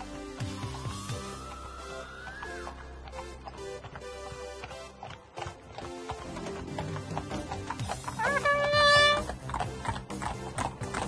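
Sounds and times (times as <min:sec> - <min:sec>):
hooves clip-clopping on tarmac: 0:00.0 - 0:11.0.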